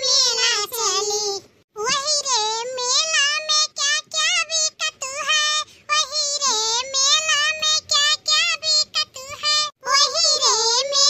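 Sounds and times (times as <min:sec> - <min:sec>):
high-pitched cartoon voice singing: 0:00.0 - 0:11.0.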